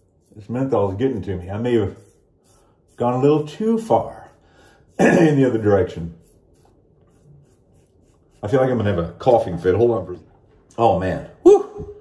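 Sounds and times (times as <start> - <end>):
razor scraping through stubble: 0.0 - 10.0.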